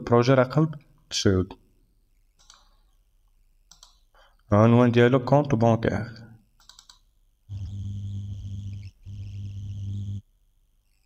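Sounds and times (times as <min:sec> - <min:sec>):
low electrical hum: 0:00.0 - 0:11.0
faint high whine: 0:07.5 - 0:10.2.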